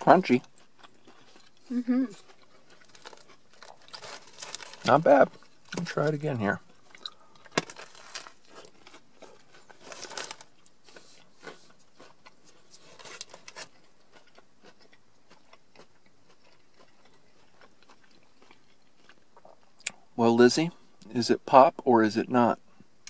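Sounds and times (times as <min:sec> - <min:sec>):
crunchy chewing: 0:00.1 - 0:20.1.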